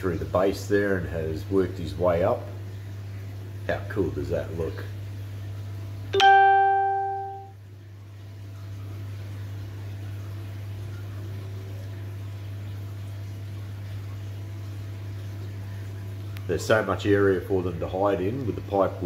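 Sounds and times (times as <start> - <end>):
single ringing note: 6.2 - 7.5.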